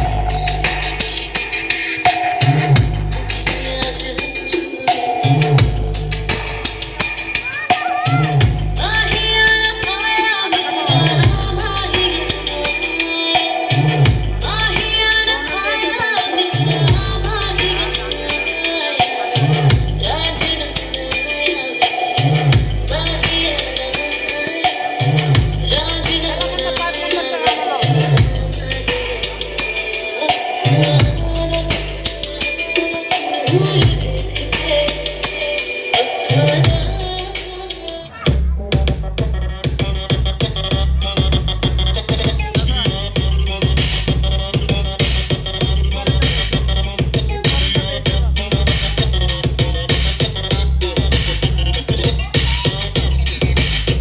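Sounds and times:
loud dance music: 0:00.0 - 0:54.0
deep bass note: 0:27.9 - 0:29.4, 0:38.3 - 0:54.0.

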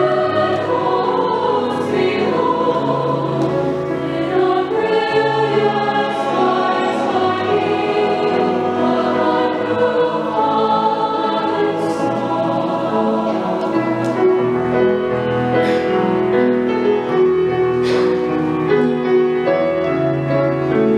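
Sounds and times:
choir singing lullaby: 0:00.0 - 0:20.9
grand piano accompaniment: 0:00.0 - 0:20.9.

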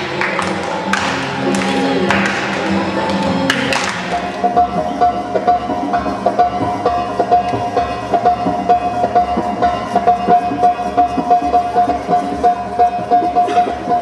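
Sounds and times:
belly dance music: 0:00.0 - 0:14.0.

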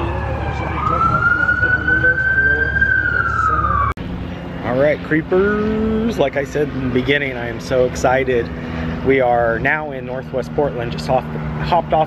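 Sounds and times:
emergency siren wailing: 0:00.0 - 0:04.0
city traffic rumble: 0:00.0 - 0:12.0.

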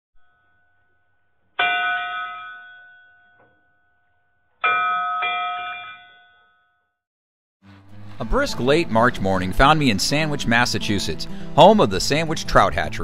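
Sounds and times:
bell-like chimes ringing: 0:01.6 - 0:04.0, 0:04.6 - 0:06.9.

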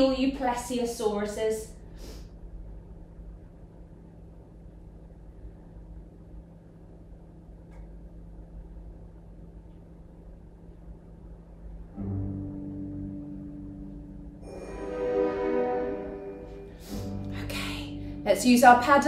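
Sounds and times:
steady low hum: 0:00.0 - 0:19.0
faint click: 0:07.6 - 0:08.0.

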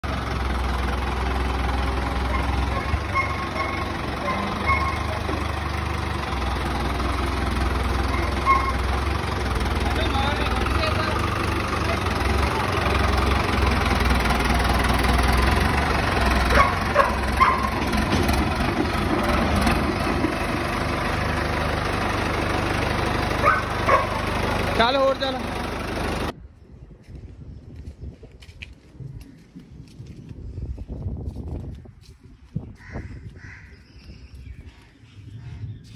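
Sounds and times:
tractor engine running low revs: 0:00.0 - 0:26.4.

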